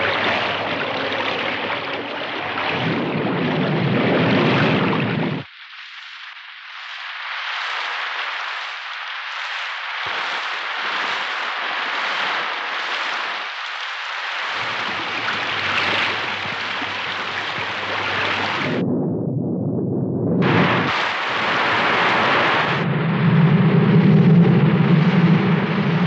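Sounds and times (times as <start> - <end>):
rain: 0.0 - 18.8, 20.4 - 26.0
low rumble: 14.6 - 26.0.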